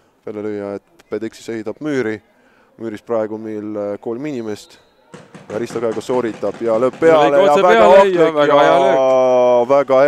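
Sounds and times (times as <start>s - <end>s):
commentator speaking: 5.5s - 9.2s.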